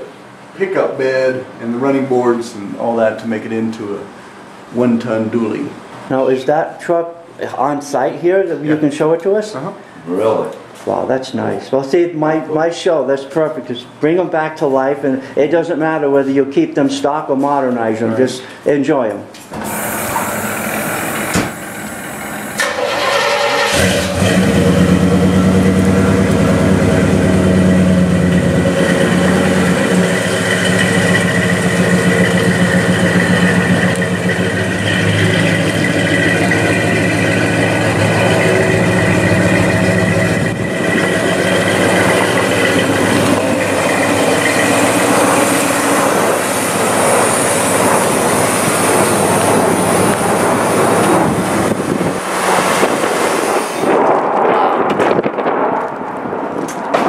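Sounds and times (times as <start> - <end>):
truck engine starting and running: 19.4 - 54.4.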